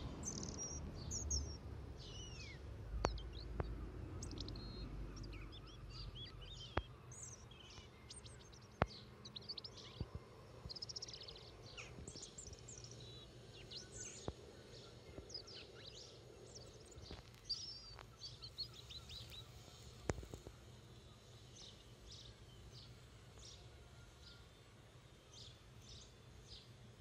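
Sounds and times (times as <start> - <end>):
low background hum: 0.0 - 27.0
songbirds chirping and singing: 0.0 - 27.0.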